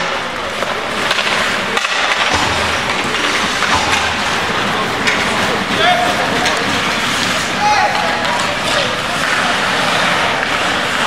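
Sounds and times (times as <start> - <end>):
hockey sticks clacking: 0.0 - 11.0
skate blades scraping ice: 0.0 - 11.0.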